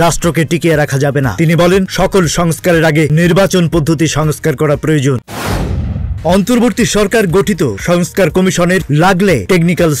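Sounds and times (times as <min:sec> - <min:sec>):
booming whoosh with low rumble: 0:05.3 - 0:06.9.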